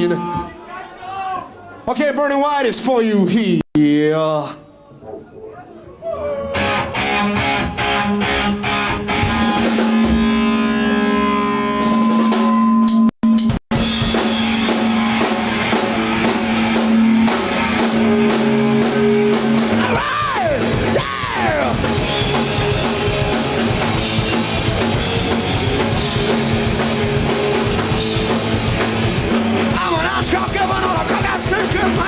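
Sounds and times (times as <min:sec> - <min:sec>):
rock band playing: 0:06.5 - 0:32.0.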